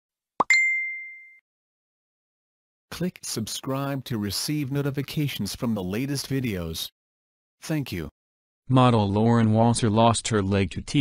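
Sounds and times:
rising pop effect: 0.4s - 1.3s
high ding: 0.4s - 1.4s.

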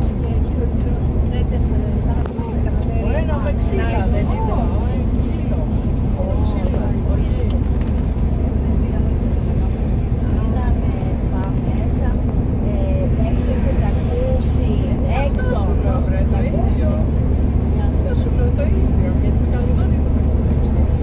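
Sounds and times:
coach engine rumble: 0.0s - 21.0s
people talking: 0.0s - 21.0s.

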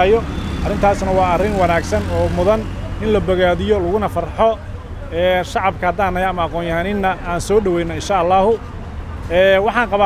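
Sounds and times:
man talking: 0.0s - 8.6s, 9.2s - 10.0s
road traffic rumble: 0.0s - 10.0s.

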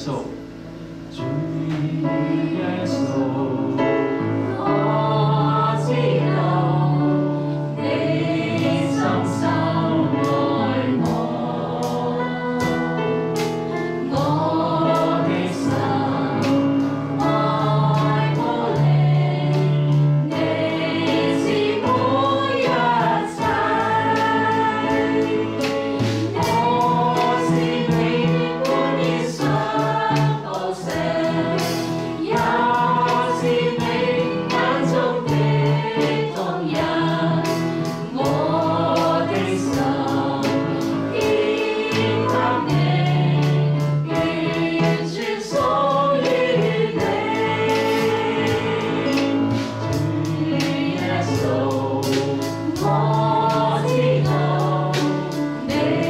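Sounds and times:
people singing worship song: 0.0s - 56.0s.

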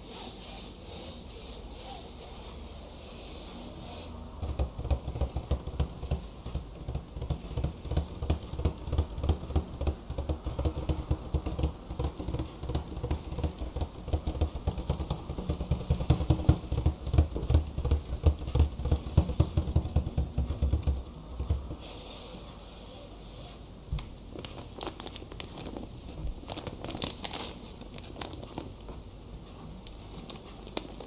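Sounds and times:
fingertip tapping on hard object: 4.4s - 21.8s.

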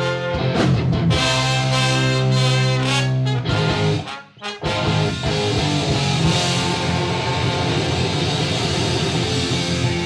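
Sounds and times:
ska band playing live: 0.0s - 10.0s.

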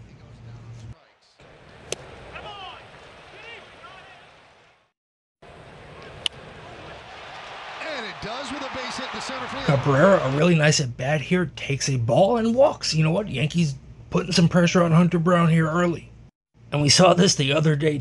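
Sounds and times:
baseball bat cracks: 1.8s - 2.2s, 6.0s - 7.6s.

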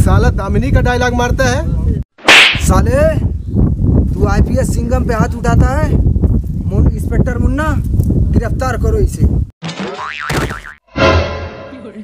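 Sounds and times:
cartoon boing sound effect: 9.9s - 10.8s.

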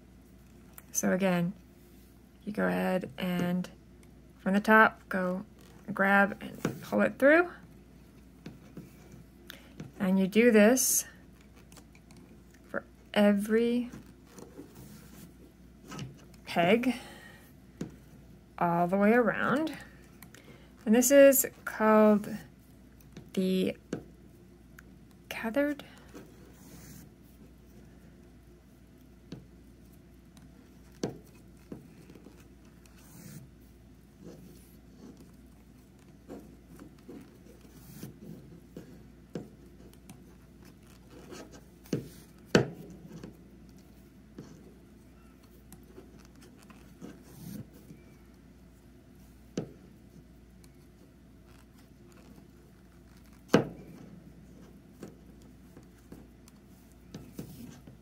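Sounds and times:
yarn rubbing and scratching: 25.3s - 58.0s.

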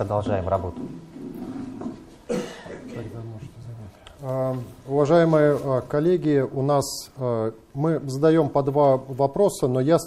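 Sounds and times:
person coughing: 2.3s - 3.2s.

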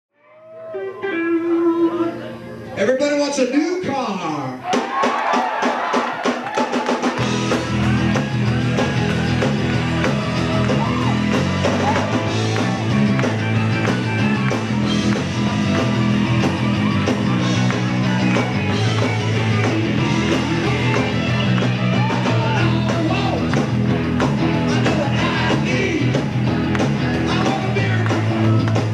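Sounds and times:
live rock band playing: 0.2s - 4.0s, 4.6s - 28.9s.

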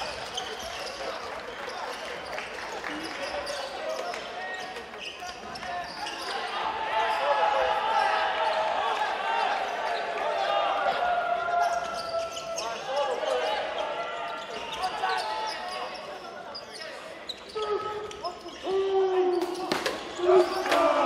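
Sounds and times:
players calling out echoing: 2.8s - 21.0s.

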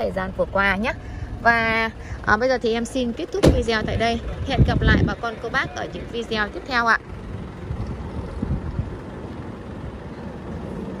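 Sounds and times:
diesel engine idling: 0.0s - 11.0s.

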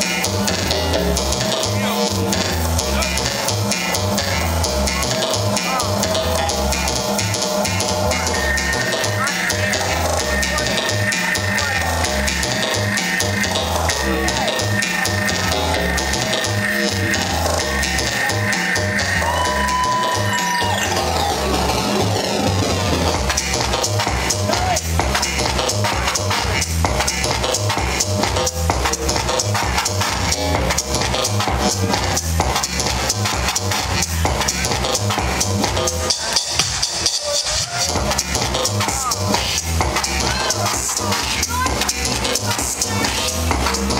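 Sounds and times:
electronic dance music: 0.0s - 43.9s.

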